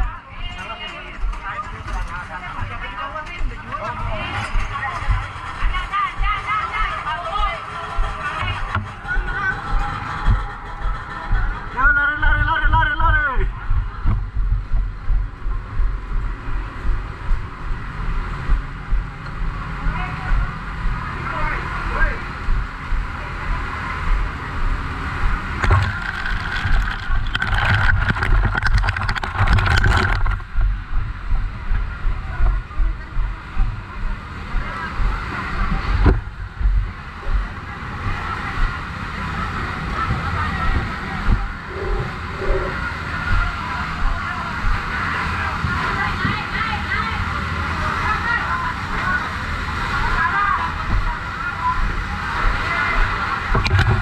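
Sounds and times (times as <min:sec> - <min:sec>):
indistinct voices: 0:00.0 - 0:16.2, 0:19.7 - 0:54.0
rustling and clatter: 0:00.4 - 0:11.9, 0:25.6 - 0:30.7, 0:53.5 - 0:54.0
camera handling rumble: 0:25.6 - 0:30.7, 0:53.6 - 0:54.0.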